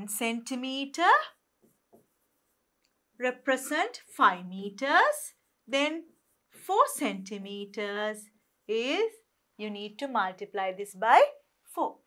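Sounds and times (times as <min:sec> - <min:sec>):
pen tapping and scraping on screen: 0:01.3 - 0:04.0, 0:05.3 - 0:08.7.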